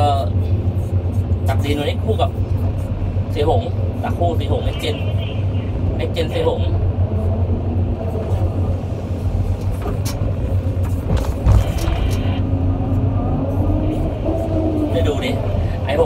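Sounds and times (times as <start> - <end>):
excavator diesel engine running: 0.0 - 16.0
steady low whine: 0.0 - 16.0.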